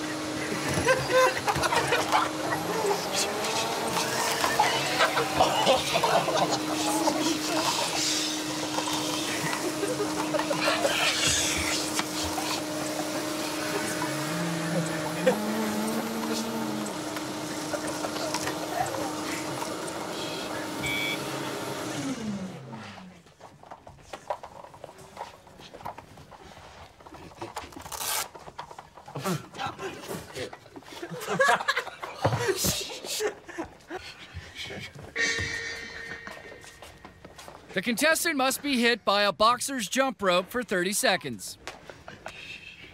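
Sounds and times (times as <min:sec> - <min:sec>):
vacuum motor whining: 0:00.0 - 0:23.3.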